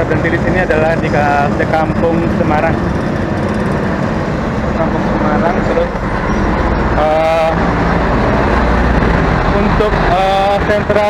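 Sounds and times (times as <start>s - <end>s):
road traffic rumble: 0.0s - 11.0s
vehicle engines running: 0.0s - 11.0s.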